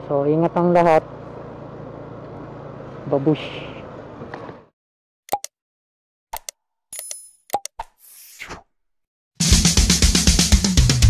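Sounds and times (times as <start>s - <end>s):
short pops and clicks: 5.3s - 5.5s, 6.3s - 8.0s.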